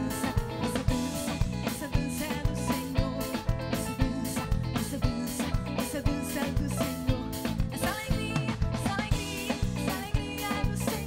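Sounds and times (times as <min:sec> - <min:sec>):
drums keeping a steady beat: 0:00.0 - 0:11.0
electric guitar picking: 0:00.0 - 0:11.0
live band playing: 0:00.0 - 0:11.0.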